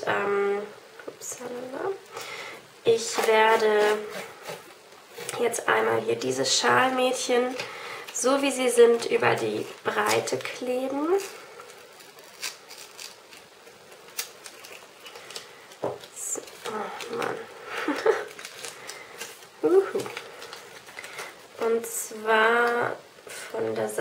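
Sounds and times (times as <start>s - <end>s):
tape peeling hiss: 9.6s - 23.6s
tape clicking and rustling: 11.2s - 21.4s
woman muttering: 19.6s - 20.1s.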